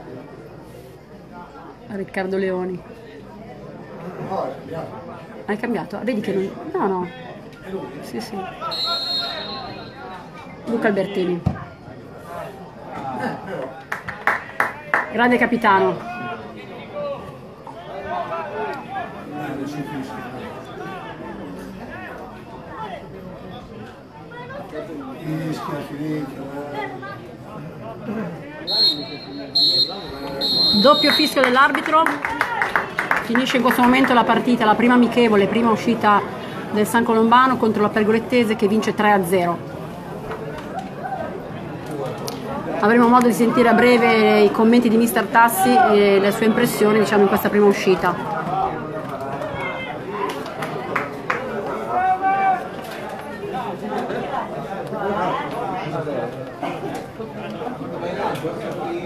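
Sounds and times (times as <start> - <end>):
voices chattering: 0.0 - 59.0
referee's whistle blasts: 8.7 - 10.1, 28.7 - 31.5.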